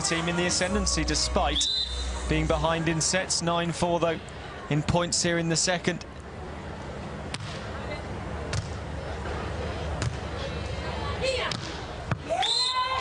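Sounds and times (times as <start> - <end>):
crowd murmur: 0.0 - 12.3.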